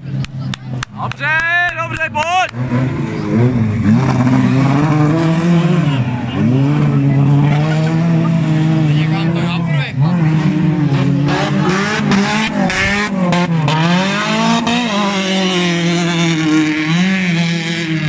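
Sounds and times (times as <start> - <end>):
racing car engines revving: 0.0 - 18.0.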